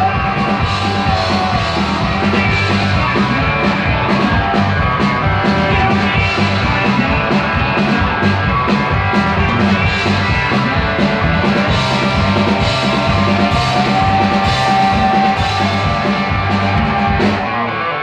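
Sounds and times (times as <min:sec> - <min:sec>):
live country rock band: 0:00.0 - 0:18.0.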